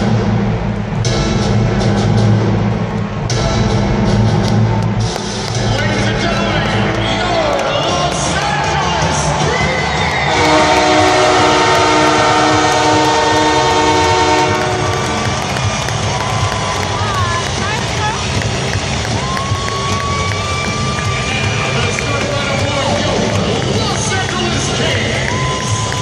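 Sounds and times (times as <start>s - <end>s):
arena crowd cheering: 2.4s - 26.0s
loud horn blast: 10.2s - 15.9s.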